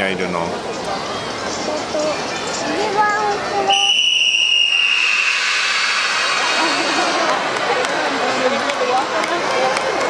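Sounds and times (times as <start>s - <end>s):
hissing hall noise: 0.6s - 10.0s
children's voices: 0.8s - 3.9s
whistle blast: 3.7s - 7.1s.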